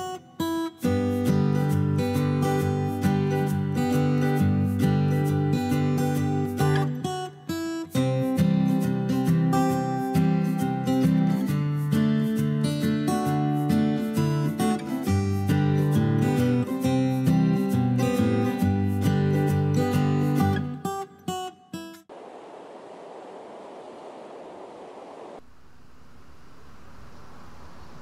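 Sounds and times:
acoustic guitar music: 0:00.0 - 0:22.1
steady hiss: 0:22.1 - 0:28.0.

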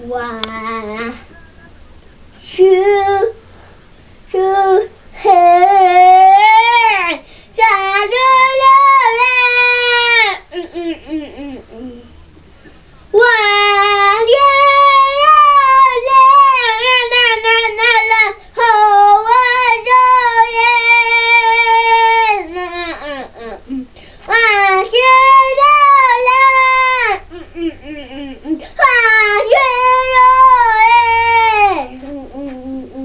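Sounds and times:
boy singing wailing notes: 0:04.4 - 0:12.1, 0:13.2 - 0:33.0.

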